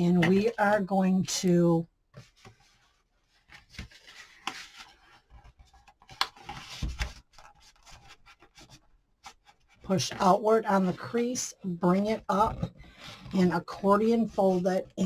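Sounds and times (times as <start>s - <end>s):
cardstock rustling and crackling: 2.2s - 10.3s.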